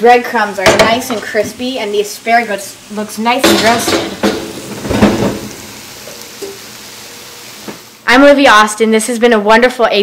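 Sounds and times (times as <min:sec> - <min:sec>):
food sizzling in a skillet: 0:00.0 - 0:08.8.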